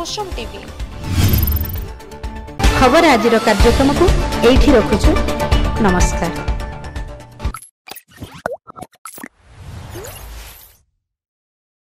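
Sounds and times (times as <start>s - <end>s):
cartoon pops and plops: 7.5s - 9.3s.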